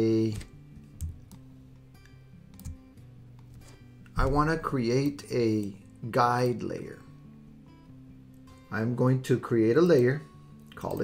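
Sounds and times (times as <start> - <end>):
soft background music: 0.0 - 11.0
computer mouse clicks: 2.0 - 2.8.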